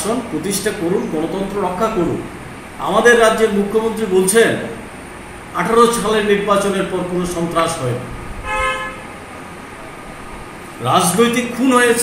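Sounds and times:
low background noise: 0.0s - 12.0s
vehicle horn toot: 8.4s - 9.2s.

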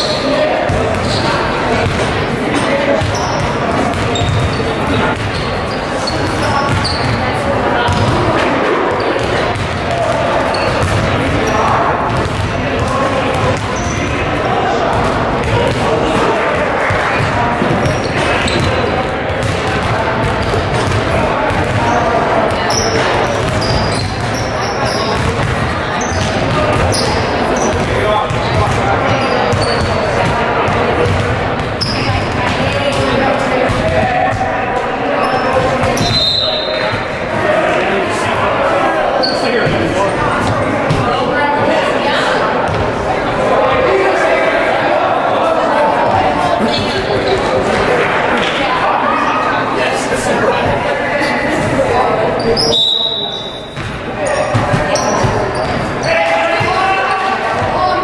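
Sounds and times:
sneaker squeaks: 0.0s - 12.5s, 13.3s - 14.3s, 16.8s - 30.4s, 31.0s - 34.4s, 35.2s - 37.1s, 39.2s - 41.0s, 51.5s - 56.8s
murmur of voices: 0.0s - 58.0s
basketballs bouncing on hardwood floor: 3.0s - 5.4s, 6.2s - 7.2s, 7.9s - 8.4s, 9.2s - 14.2s, 16.9s - 33.1s.

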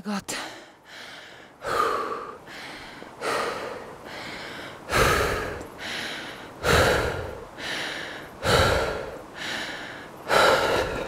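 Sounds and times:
person breathing hard: 0.3s - 11.0s.

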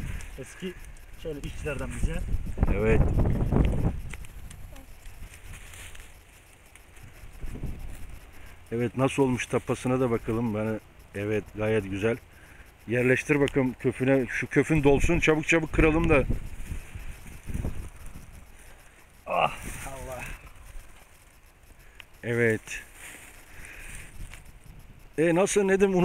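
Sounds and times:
wind rumble on microphone: 0.0s - 5.8s, 7.0s - 8.4s, 14.7s - 18.6s, 23.8s - 25.2s
rustling of leaves and stalks: 0.0s - 26.0s
muffled rustle: 3.6s - 8.3s, 22.6s - 24.8s.

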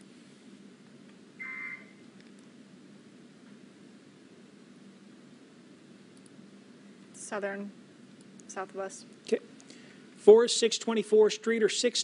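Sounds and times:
faint background hum: 0.0s - 12.0s
short electronic beep: 1.4s - 2.0s.

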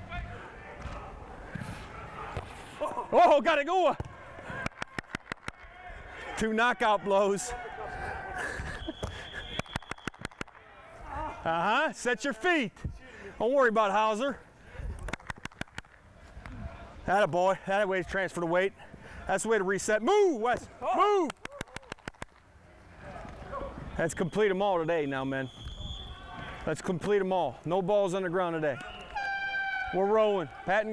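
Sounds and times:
steady outdoor hum: 0.0s - 30.9s
man shouting: 20.0s - 21.3s.

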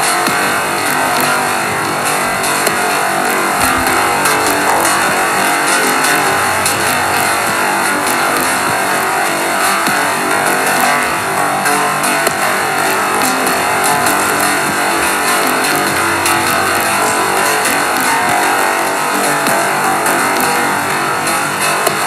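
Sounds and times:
synthpop sustained synthesizer tones: 0.0s - 22.0s.

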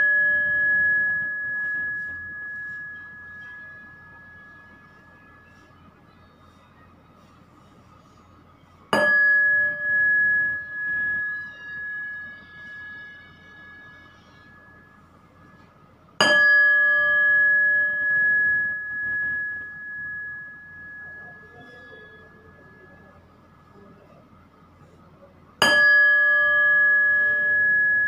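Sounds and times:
small metal bell ringing: 0.0s - 5.6s, 9.0s - 15.6s, 16.2s - 23.0s, 25.6s - 28.0s.

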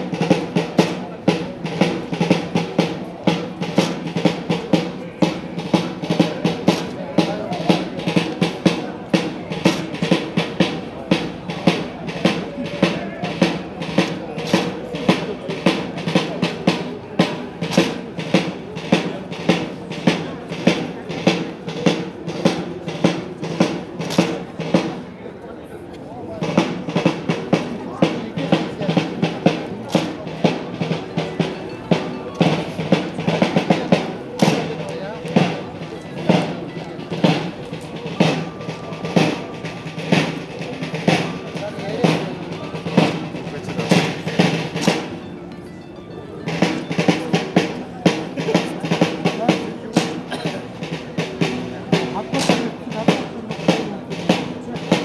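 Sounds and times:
snare and bass drum cadence: 0.0s - 25.1s, 26.4s - 45.2s, 46.5s - 55.0s
accompanying music: 26.4s - 55.0s.

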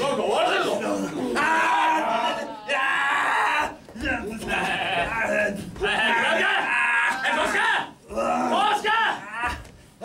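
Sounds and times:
man yelling wavering cries: 1.3s - 9.6s.

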